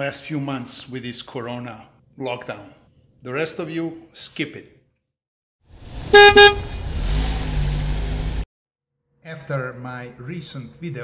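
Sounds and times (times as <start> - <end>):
vehicle rumble: 5.7 - 8.4
car horn toots: 6.1 - 6.8.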